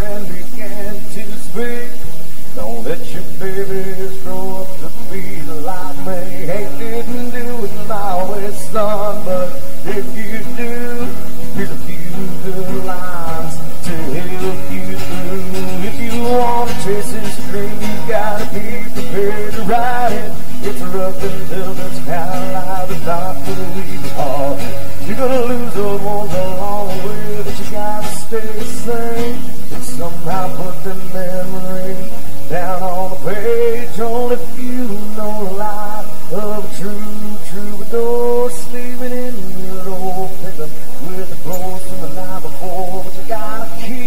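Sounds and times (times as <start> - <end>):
acoustic guitars strummed: 0.0 - 44.0
man singing: 0.0 - 44.0.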